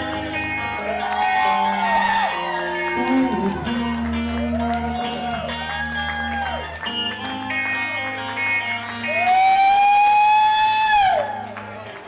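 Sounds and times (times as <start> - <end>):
electric guitar high note: 1.8 - 10.8.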